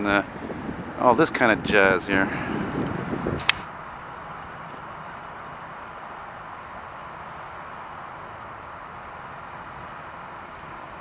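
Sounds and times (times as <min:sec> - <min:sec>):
distant jet engines rushing: 0:00.0 - 0:11.0.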